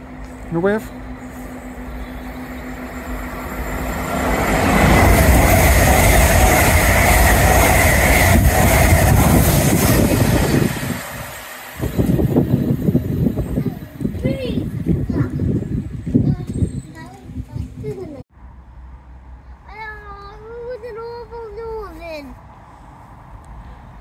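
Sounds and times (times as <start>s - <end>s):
steady whine: 0.0s - 16.4s
electric train passing: 0.0s - 17.4s
rushing rail noise: 0.0s - 17.5s, 18.4s - 24.0s.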